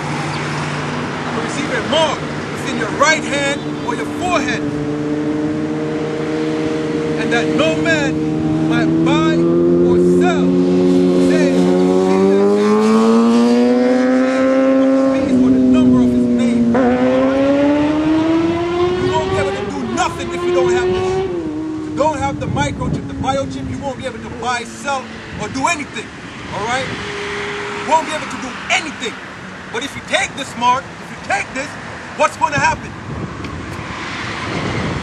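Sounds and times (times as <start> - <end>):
vehicle engine accelerating: 0.0 - 30.8, 31.6 - 35.0.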